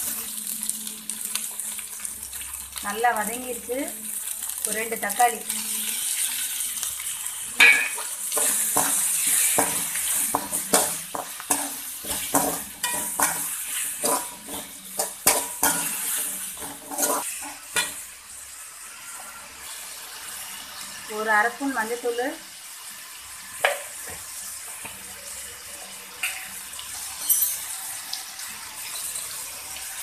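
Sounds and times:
vegetables sizzling in oil: 0.0 - 30.0
spatula scraping a pan: 7.6 - 18.0.

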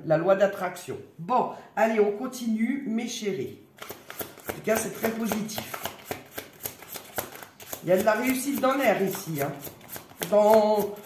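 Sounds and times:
person speaking: 0.0 - 11.0
cards being shuffled: 3.8 - 11.0.

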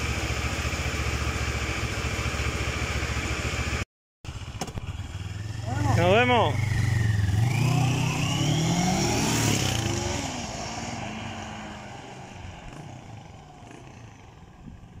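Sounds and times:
motorcycle engine accelerating: 0.0 - 15.0.

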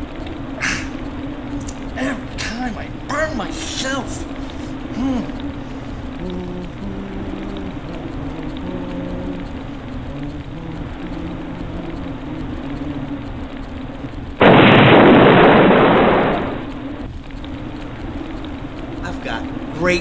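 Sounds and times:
held changing tones: 0.0 - 20.0
explosion: 14.4 - 16.8.

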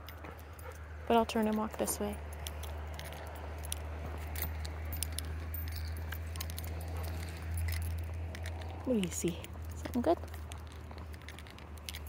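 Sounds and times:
metal pieces jingling: 0.0 - 12.0
steady low rumble: 0.0 - 12.0.

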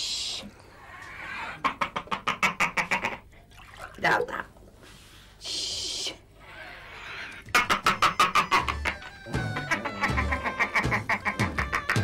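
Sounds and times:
person laughing: 7.8 - 12.0.

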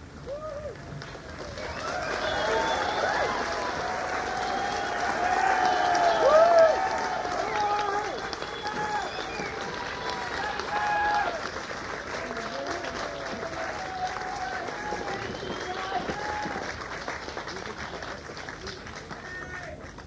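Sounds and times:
scattered handclaps: 0.7 - 20.0
crowd voices calling out: 1.7 - 11.5.

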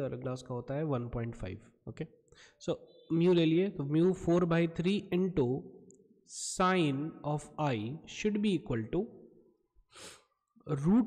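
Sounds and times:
man speaking: 0.0 - 5.7, 6.3 - 9.1, 10.7 - 11.0.

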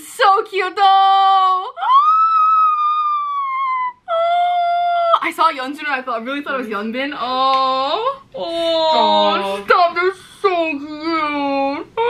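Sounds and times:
woman squealing: 1.2 - 5.3.

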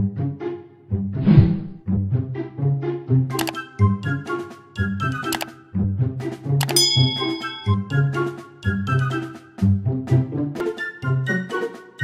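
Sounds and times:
background music with steady beat: 1.9 - 12.0
bright bell ding: 6.6 - 8.1.

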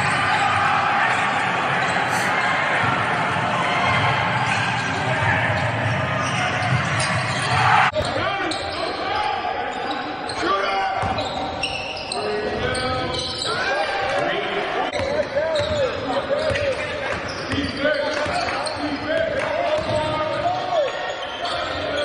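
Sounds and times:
sneakers squeaking: 1.8 - 2.9, 4.3 - 9.0, 9.7 - 13.7, 14.9 - 19.1, 19.7 - 22.0.

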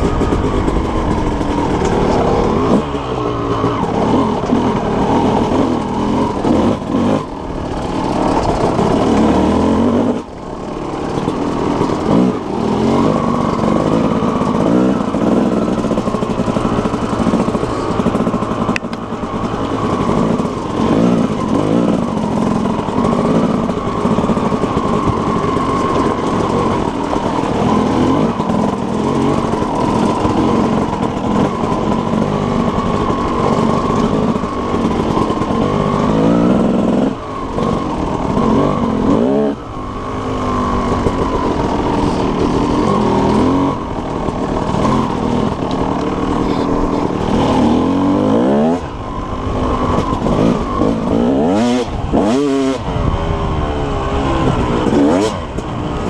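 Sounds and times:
dirt bike engine running: 0.0 - 56.0.

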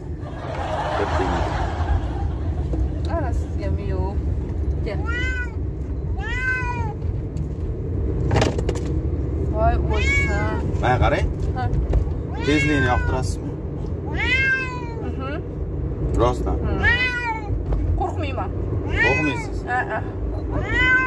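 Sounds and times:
car cabin rumble: 0.0 - 13.1
cat meowing: 5.0 - 7.0, 9.8 - 10.7, 12.3 - 13.4, 14.0 - 15.2, 16.7 - 17.6, 18.8 - 19.6, 20.4 - 21.0.

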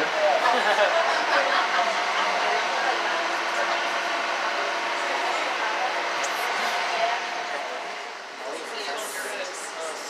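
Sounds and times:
boat engine hum: 0.0 - 10.0.

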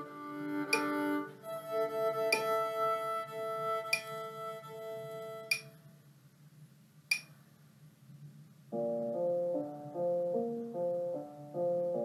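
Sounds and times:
violin sustained bowed note: 0.0 - 5.7
faint room noise: 0.0 - 12.0.

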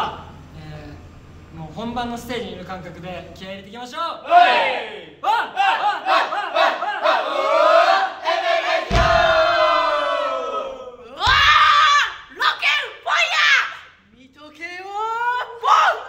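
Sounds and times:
group chanting and shouting: 0.0 - 0.5, 4.0 - 14.1, 15.0 - 16.0
thump: 8.8 - 9.6.

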